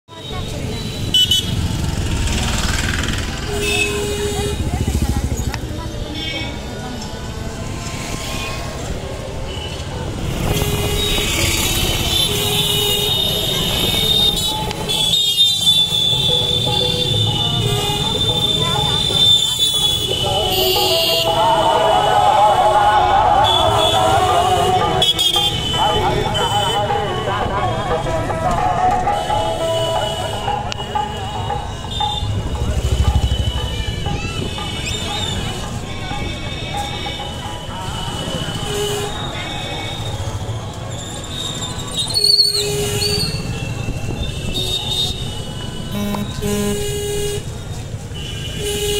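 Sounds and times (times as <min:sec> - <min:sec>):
motorbikes and traffic: 0:00.0 - 0:48.9
voices of people: 0:00.1 - 0:48.0
vehicle horns honking: 0:00.2 - 0:01.8, 0:03.4 - 0:05.1, 0:09.4 - 0:40.6, 0:41.4 - 0:48.9.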